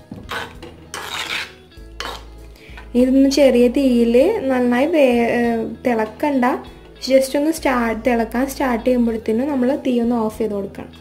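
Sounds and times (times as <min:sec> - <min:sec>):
spoon scraping clay pot: 0:00.0 - 0:02.9.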